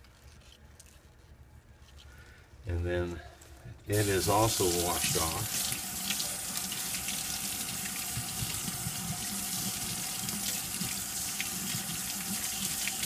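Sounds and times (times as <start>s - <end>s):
faucet running into sink: 4.0s - 13.0s.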